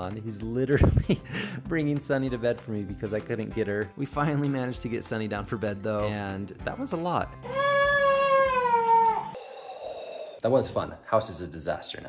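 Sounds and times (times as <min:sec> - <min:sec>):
toddler whining: 0:07.4 - 0:10.4.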